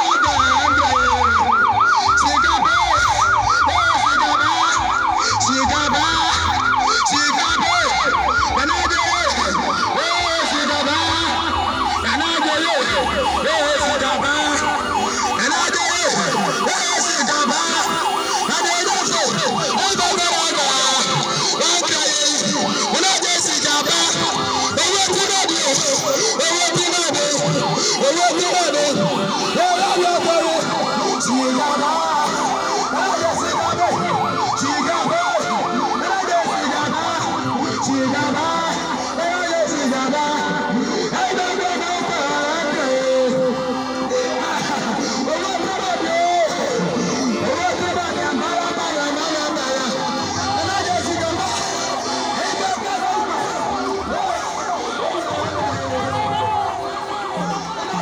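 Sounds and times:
vehicle sirens wailing: 0.0 - 58.0
voices: 0.0 - 58.0.

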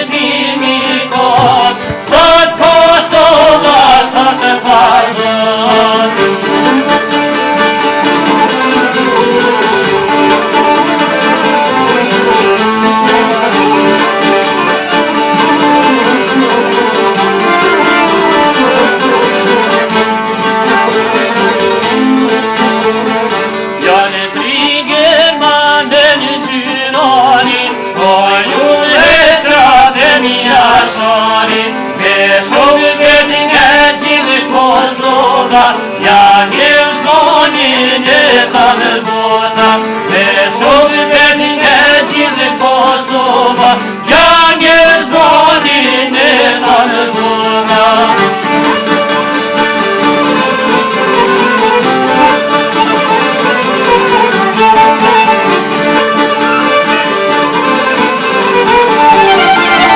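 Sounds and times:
men singing: 0.0 - 9.8, 23.8 - 48.8
strummed lutes folk music: 0.0 - 59.9.

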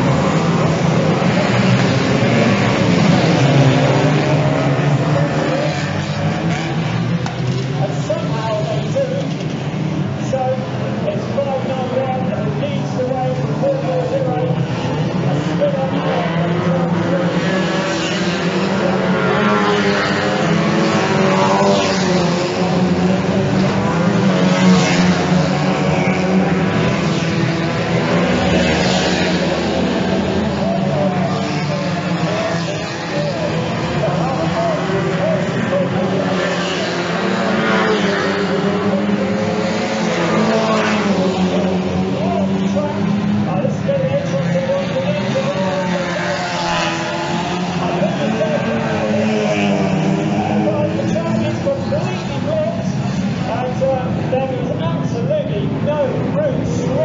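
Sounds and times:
racing car engines revving: 0.0 - 57.0.

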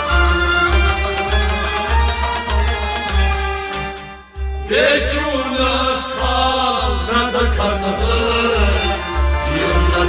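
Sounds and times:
person singing long held notes: 4.7 - 10.0.

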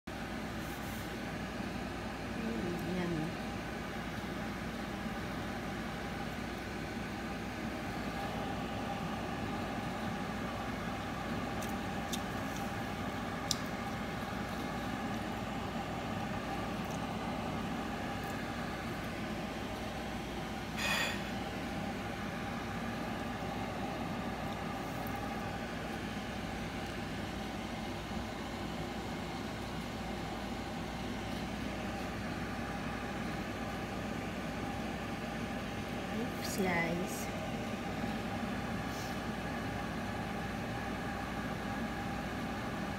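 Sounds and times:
mechanical hum: 0.1 - 42.9.

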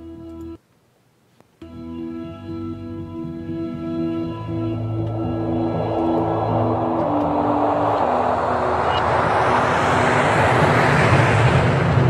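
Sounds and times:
held music notes: 1.6 - 9.9
low rumble: 4.0 - 12.0
rush of noise: 4.3 - 12.0.

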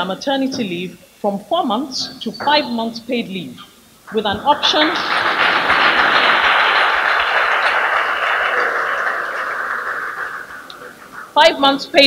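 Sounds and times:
audience applauding: 4.1 - 11.4.

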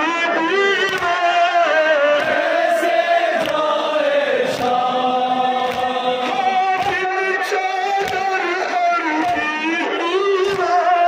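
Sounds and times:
men chanting in unison: 0.0 - 11.0
hands slapping on chests: 0.8 - 1.2, 2.1 - 10.9.

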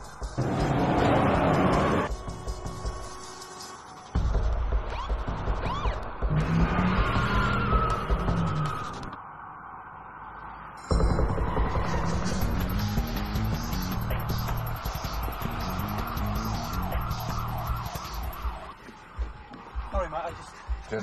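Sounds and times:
action film music: 0.0 - 9.2, 10.8 - 21.0
car engine: 0.3 - 2.1.

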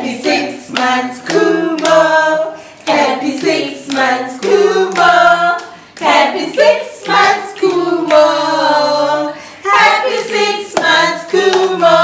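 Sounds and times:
hands clapping: 0.0 - 2.2, 2.8 - 9.0, 9.7 - 12.0
group of voices singing: 0.0 - 12.0.

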